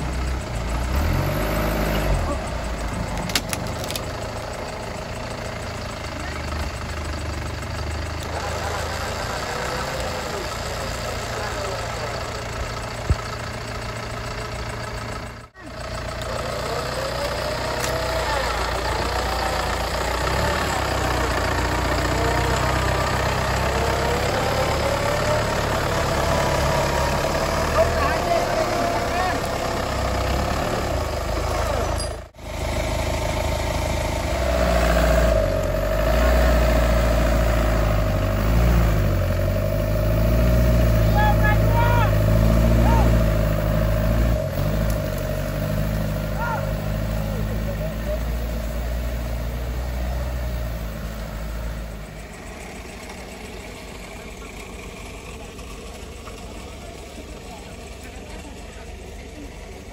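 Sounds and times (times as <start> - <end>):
engine rumbling under load: 0.0 - 59.9.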